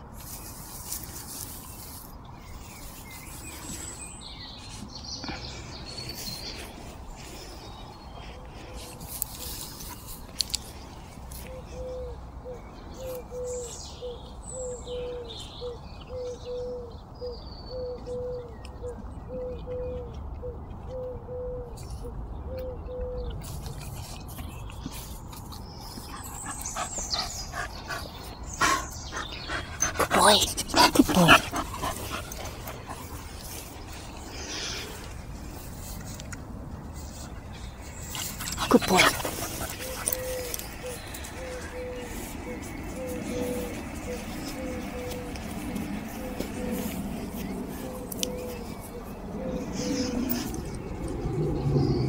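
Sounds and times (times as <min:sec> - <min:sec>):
small birds chirping: 0:00.0 - 0:52.0
bird cooing: 0:11.5 - 0:21.8, 0:38.6 - 0:46.9, 0:47.7 - 0:50.8.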